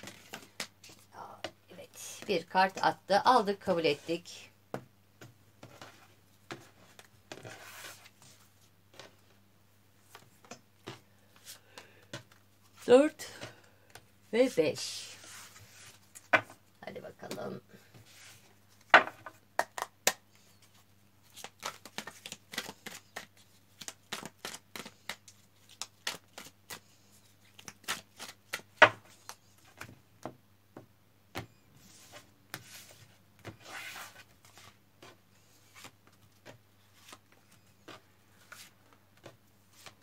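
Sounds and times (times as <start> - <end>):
cards shuffled and dealt on table: 0.0 - 1.6, 4.7 - 9.4, 10.0 - 14.0, 15.2 - 16.6, 17.3 - 30.3, 31.3 - 40.0.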